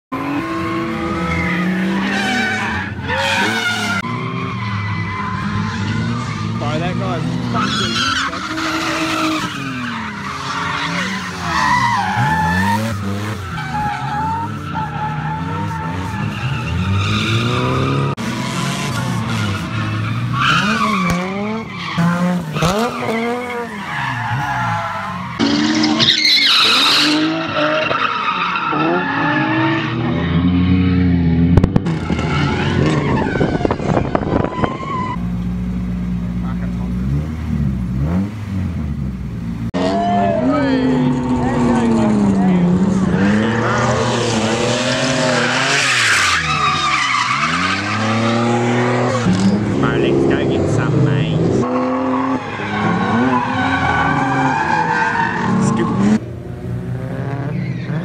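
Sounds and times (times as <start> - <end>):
car engines revving: 0.1 - 58.0
tyres squealing on tarmac: 1.1 - 18.1, 19.2 - 30.2, 32.0 - 35.2, 39.8 - 49.6, 52.0 - 56.2.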